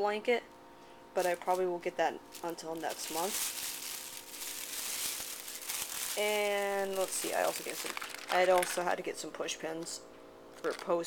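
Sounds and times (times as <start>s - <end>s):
plastic bag rustling: 1.2s - 9.2s.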